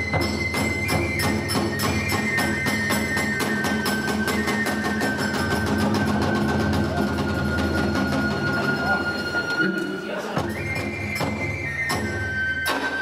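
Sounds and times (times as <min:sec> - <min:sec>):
flute holding long note: 0:00.0 - 0:13.0.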